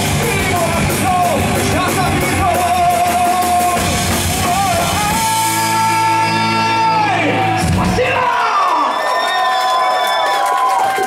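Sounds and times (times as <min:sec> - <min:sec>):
audience cheering and whooping: 0:06.4 - 0:11.0.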